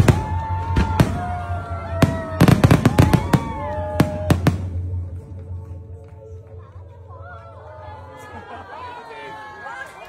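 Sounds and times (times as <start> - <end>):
fireworks bangs: 0.0 - 5.1
music playing: 0.0 - 10.0.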